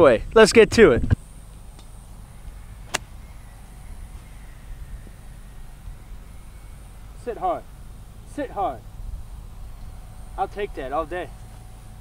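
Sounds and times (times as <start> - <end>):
low background rumble: 0.0 - 12.0
golf club striking ball: 2.8 - 3.2.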